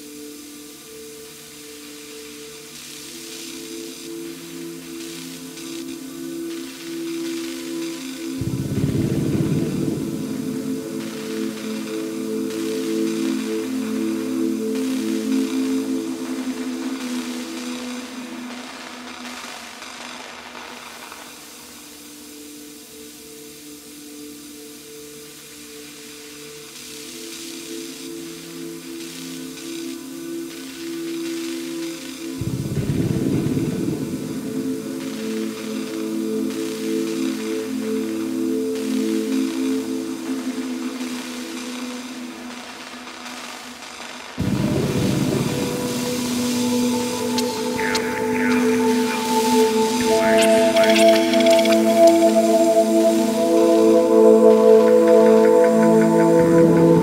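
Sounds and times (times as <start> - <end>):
thick noisy low layer: 0.0 - 26.4, 27.9 - 57.0
faint hiss: 0.0 - 57.0
synthesizer drone tones: 8.3 - 17.6, 32.4 - 39.3, 44.4 - 57.0
synthesizer held tones: 44.4 - 57.0.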